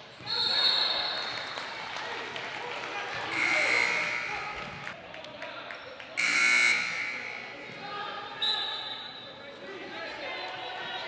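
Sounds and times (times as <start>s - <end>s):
referee's whistle blasts: 0.2s - 1.2s, 3.3s - 4.5s, 6.2s - 7.6s, 8.4s - 9.3s.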